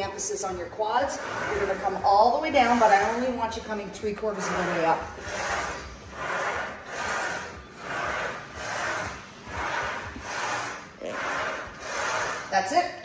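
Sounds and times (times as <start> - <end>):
bar sliding on steel rods: 0.0 - 12.7.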